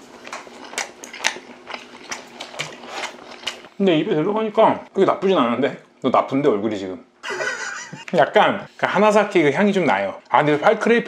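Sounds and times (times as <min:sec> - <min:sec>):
wet chewing mouth clicks: 0:00.0 - 0:03.8.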